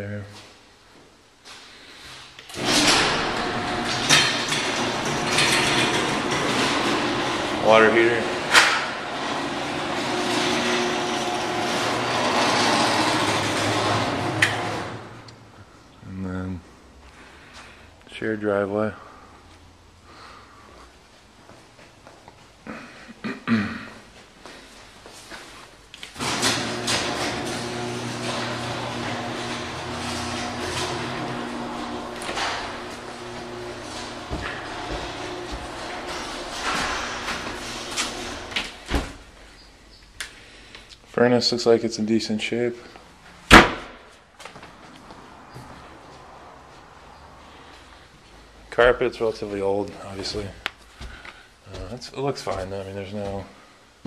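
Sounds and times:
garage door rattling up tracks: 2.5 - 15.3, 26.2 - 39.4
electric opener hum: 2.5 - 15.4, 26.2 - 39.4
knocks and rustles: 26.1 - 39.4.

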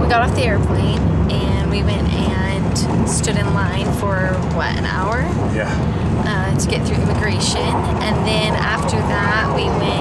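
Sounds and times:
woman talking: 0.0 - 5.4, 6.2 - 10.0
train rumbling: 0.0 - 10.0.

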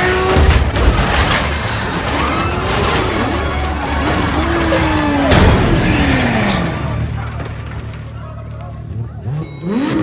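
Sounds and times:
people's voices: 2.2 - 10.0.

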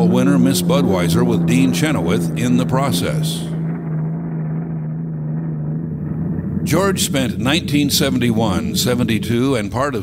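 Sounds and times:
muffled boat engine drone: 0.0 - 10.0.

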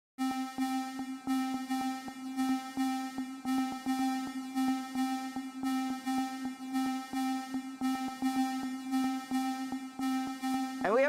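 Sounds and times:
held synth tone: 0.2 - 11.0.

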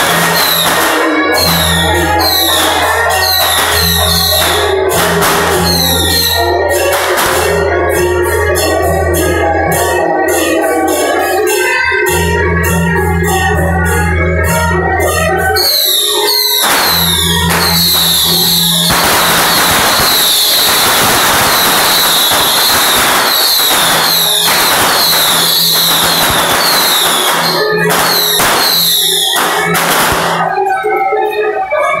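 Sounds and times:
firecrackers crackling: 0.0 - 32.0
music: 0.0 - 32.0.

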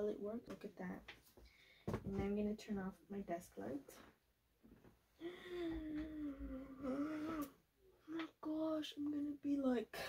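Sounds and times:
woman humming a tune: 5.2 - 7.5.

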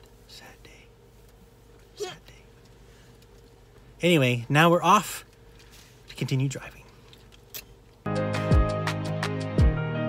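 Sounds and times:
faint steady hum: 0.0 - 8.1.

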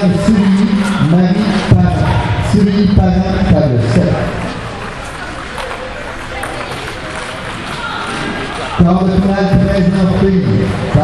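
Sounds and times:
public address announcer: 0.0 - 4.6, 8.8 - 11.0
many indistinct voices: 0.0 - 11.0.

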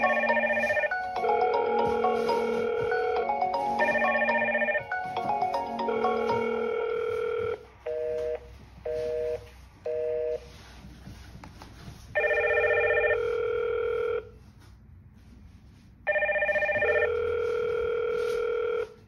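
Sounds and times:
intercom chiming ringtone: 0.0 - 10.6, 12.2 - 14.4, 16.1 - 19.0.

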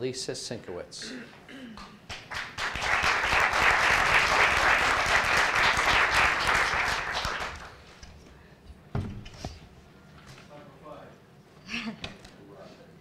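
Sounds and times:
audience applauding: 2.1 - 7.8.

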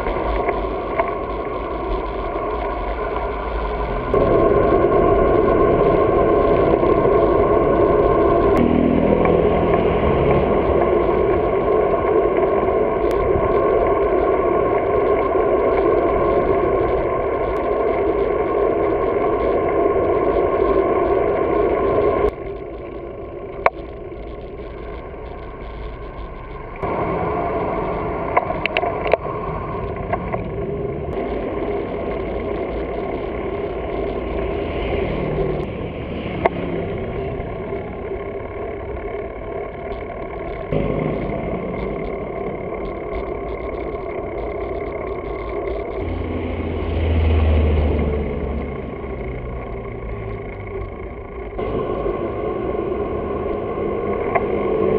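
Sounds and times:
car engine rumbling: 0.0 - 54.9
wind and road noise: 0.0 - 54.9
sharp clicks: 15.2 - 26.9, 39.0 - 46.2.

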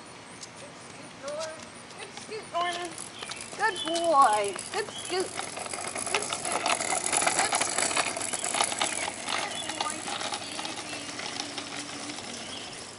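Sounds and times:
scooter wheels rolling on asphalt: 0.4 - 12.9
rattle of clicks: 1.3 - 12.8.

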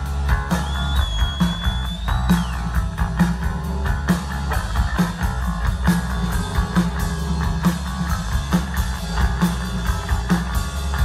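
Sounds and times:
drums striking: 0.0 - 11.0
live rock band playing: 0.0 - 11.0.

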